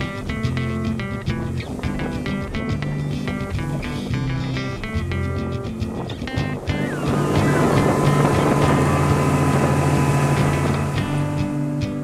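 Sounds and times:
motorboat engine: 0:00.0 - 0:12.0
rushing water: 0:00.0 - 0:12.0
strummed guitar music: 0:00.0 - 0:12.0.

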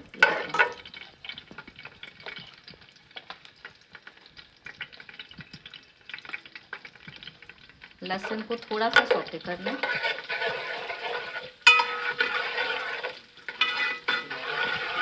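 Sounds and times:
garlic and seeds frying: 0:00.0 - 0:15.0
ladle scraping metal pot: 0:00.1 - 0:01.0, 0:08.2 - 0:15.0.

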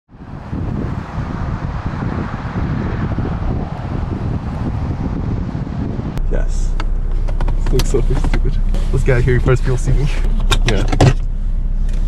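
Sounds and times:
wind buffeting microphone: 0:00.1 - 0:09.5
vehicle running noise: 0:00.1 - 0:12.0.

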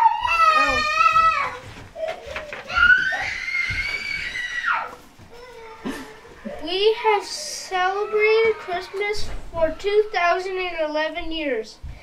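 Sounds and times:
child's high-pitched squeal: 0:00.0 - 0:05.8.

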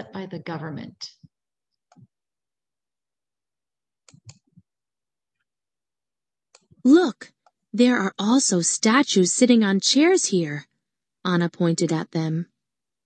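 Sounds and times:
recorded narrator reading aloud: 0:00.0 - 0:01.2, 0:06.8 - 0:12.5
computer mouse clicks: 0:04.0 - 0:04.6, 0:06.5 - 0:06.8.

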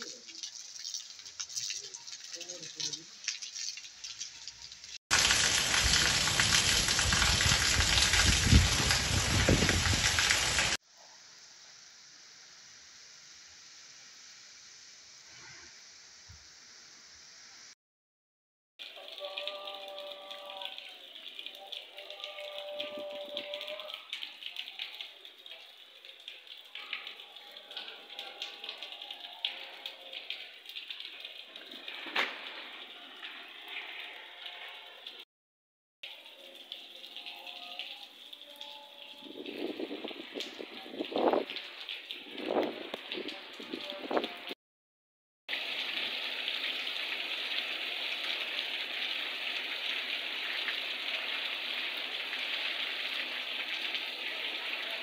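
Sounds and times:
rain falling on flooded street: 0:00.0 - 0:10.8, 0:18.8 - 0:35.2, 0:36.0 - 0:44.6, 0:45.5 - 0:55.0.

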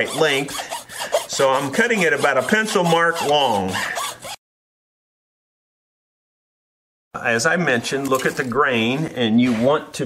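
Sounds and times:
speech: 0:00.0 - 0:00.6, 0:01.3 - 0:03.8, 0:07.2 - 0:10.0.

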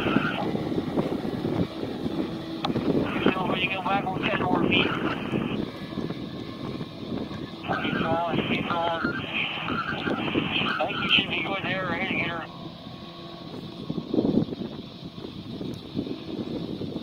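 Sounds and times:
outboard motor running: 0:00.0 - 0:17.0
wind buffeting microphone: 0:00.0 - 0:17.0
indistinct voices: 0:07.6 - 0:12.5.

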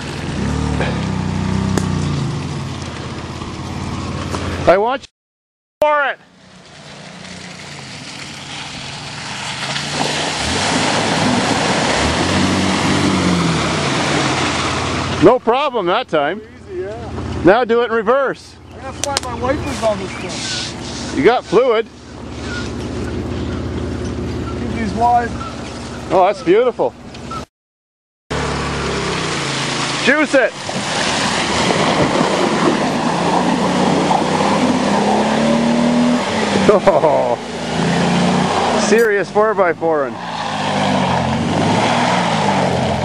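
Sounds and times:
car engine revving: 0:00.0 - 0:04.9, 0:06.6 - 0:27.4, 0:28.3 - 0:43.0
tyres churning mud and water: 0:00.0 - 0:05.0, 0:06.0 - 0:27.0, 0:28.3 - 0:43.0.

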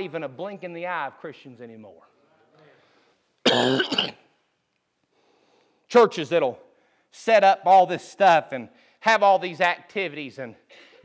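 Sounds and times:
man coughing: 0:03.4 - 0:04.3.

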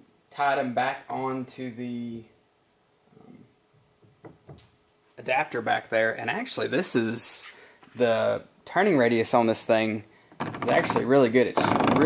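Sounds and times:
man speaking: 0:00.4 - 0:02.3, 0:05.2 - 0:10.0, 0:10.6 - 0:12.0.

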